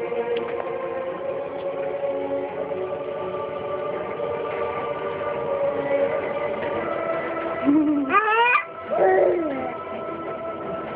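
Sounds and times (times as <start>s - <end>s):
baby squealing: 8.1s - 9.8s.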